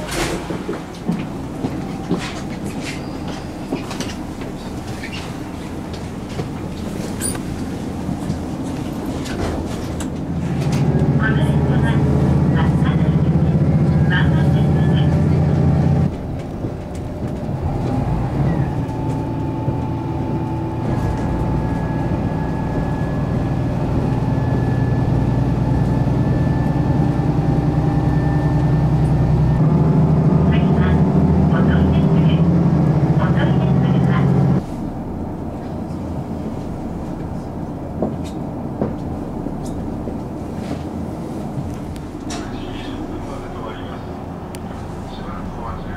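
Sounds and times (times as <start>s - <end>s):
diesel railcar engine hum: 0.0s - 45.9s.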